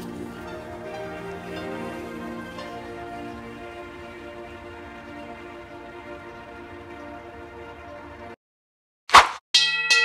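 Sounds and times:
bright bell-like chime: 0:09.6 - 0:10.0.

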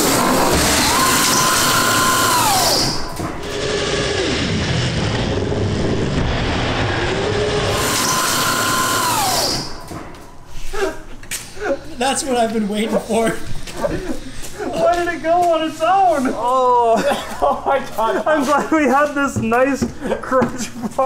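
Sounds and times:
electric motor whining: 0:00.0 - 0:06.0, 0:07.0 - 0:09.9.

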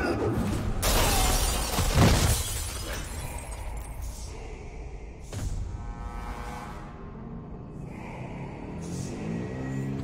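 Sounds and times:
debris shattering crash: 0:00.8 - 0:03.9.

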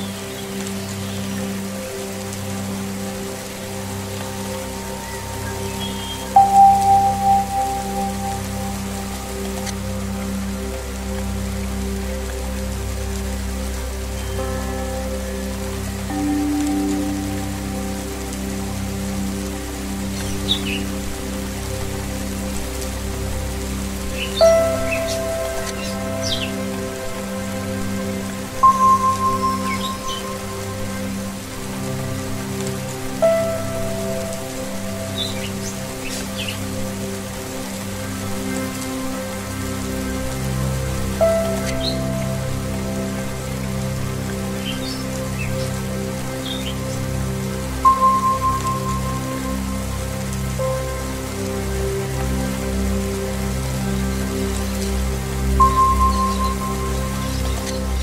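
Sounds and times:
rain on wet surface: 0:00.0 - 0:58.0
slow meditation music: 0:00.0 - 0:58.0.

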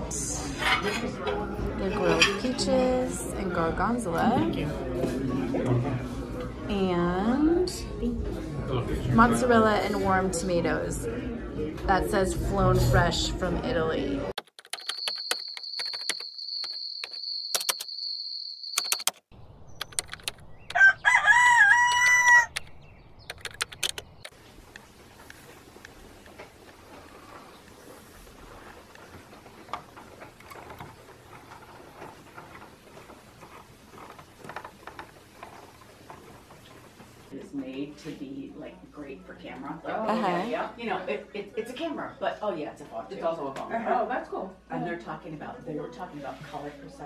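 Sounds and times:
clicks: 0:14.4 - 0:18.0, 0:18.7 - 0:19.2, 0:19.8 - 0:20.8, 0:21.9 - 0:26.0
rooster crowing: 0:20.8 - 0:22.6.

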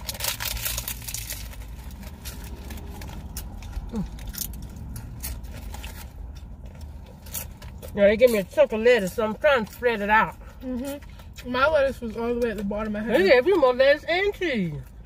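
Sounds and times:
paper wrappers rustling: 0:00.0 - 0:07.8
steady low rumble: 0:00.0 - 0:08.0
crunchy taco chewing: 0:00.0 - 0:15.0.

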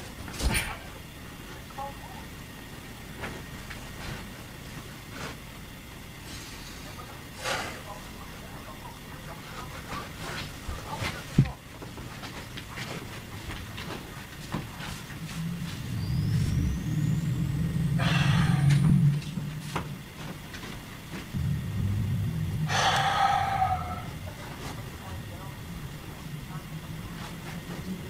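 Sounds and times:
harsh bursts: 0:21.3 - 0:24.4.

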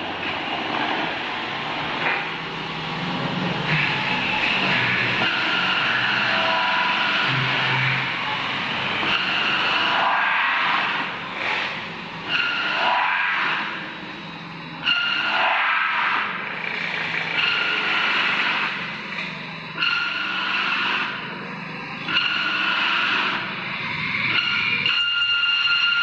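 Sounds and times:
low machine hum: 0:01.2 - 0:12.5
metal spinning roller squeal: 0:03.8 - 0:26.0.

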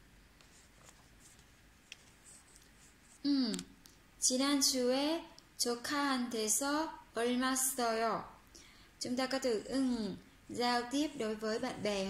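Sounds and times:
faint paper rustling: 0:00.4 - 0:03.3.

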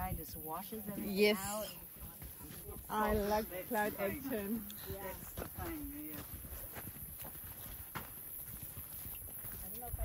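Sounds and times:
footsteps on dirt trail: 0:00.6 - 0:10.0.

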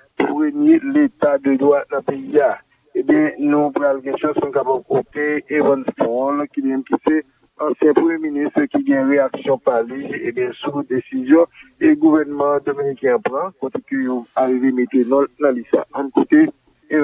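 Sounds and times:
person speaking: 0:00.0 - 0:17.0.

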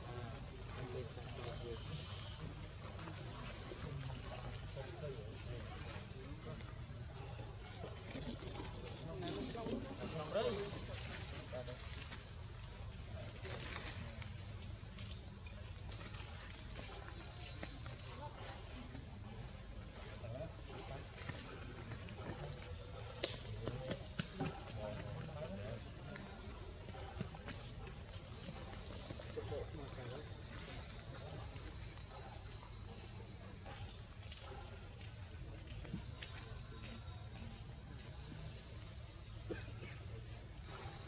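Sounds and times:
faint indistinct voices: 0:00.0 - 0:41.0.

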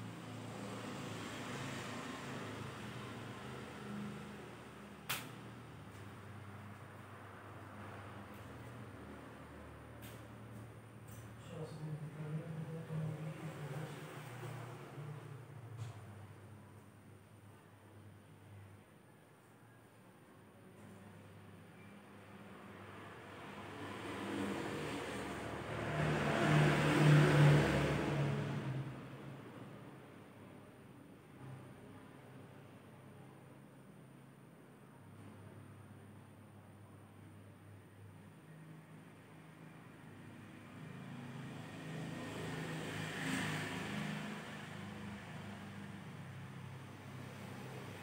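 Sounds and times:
vehicle passing by: 0:00.0 - 0:16.2, 0:22.2 - 0:30.1, 0:38.5 - 0:48.0.

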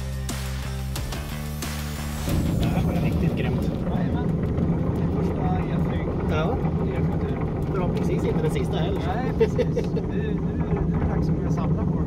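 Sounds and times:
aircraft cabin noise: 0:02.3 - 0:12.0
voices: 0:02.5 - 0:12.0.

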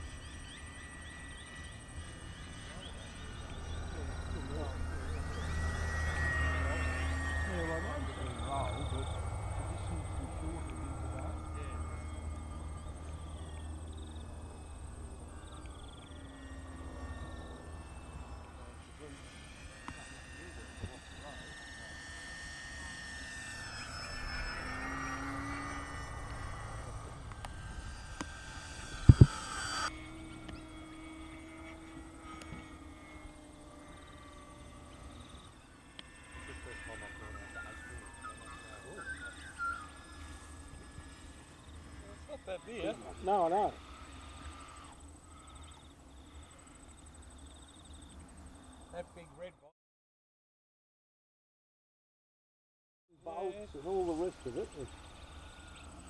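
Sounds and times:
model airplane motor whining: 0:00.0 - 0:49.6, 0:53.2 - 0:56.0.

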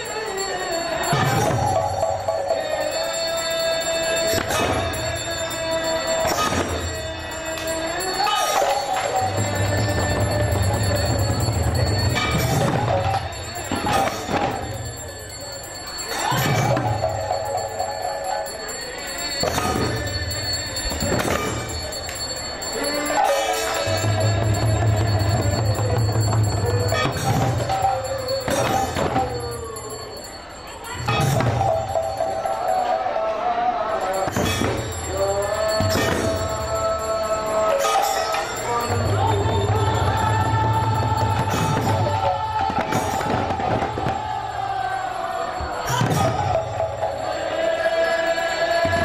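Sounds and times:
hand cymbals ringing: 0:00.0 - 0:33.2, 0:33.9 - 0:43.6, 0:44.2 - 0:49.0
drums being beaten: 0:00.1 - 0:30.3, 0:31.0 - 0:32.6, 0:34.1 - 0:45.0, 0:45.6 - 0:47.4
hand drums beaten: 0:23.6 - 0:29.7.

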